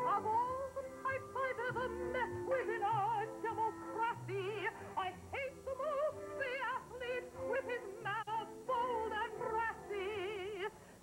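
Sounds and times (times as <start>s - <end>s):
woman singing operatically: 0.0s - 10.8s.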